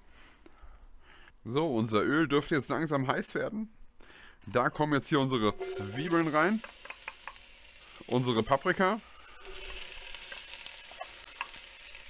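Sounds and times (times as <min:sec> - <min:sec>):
vegetables sizzling in oil: 0:05.5 - 0:12.0
small pops: 0:06.6 - 0:08.1, 0:09.5 - 0:11.8.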